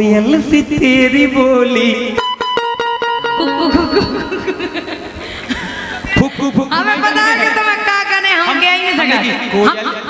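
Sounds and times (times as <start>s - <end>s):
person laughing into microphone: 3.4s - 7.0s.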